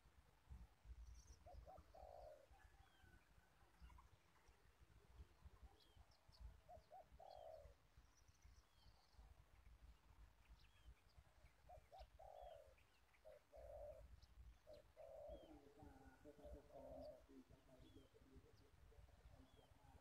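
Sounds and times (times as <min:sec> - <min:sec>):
dove cooing faintly: 0:00.5 - 0:08.0, 0:11.5 - 0:20.0
small birds chirping: 0:00.8 - 0:20.0.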